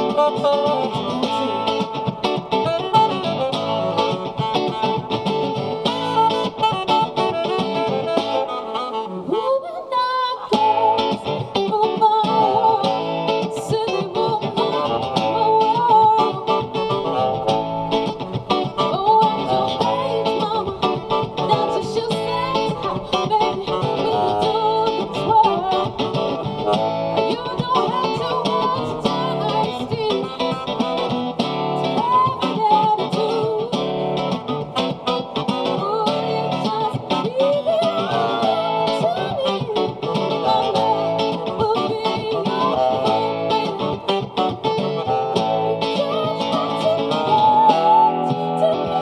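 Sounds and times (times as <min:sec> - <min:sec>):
live band music: 0:00.0 - 0:09.6, 0:10.5 - 0:49.0
woman singing into a microphone: 0:00.0 - 0:49.0.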